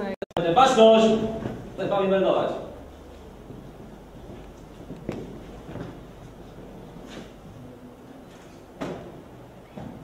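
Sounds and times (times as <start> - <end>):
low room hum: 0.0 - 10.0
footsteps on wooden floor: 3.4 - 7.4.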